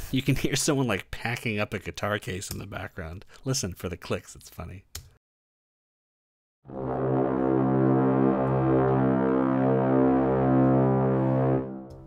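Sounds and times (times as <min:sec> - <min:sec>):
orchestral brass holding a note: 0:06.7 - 0:12.0.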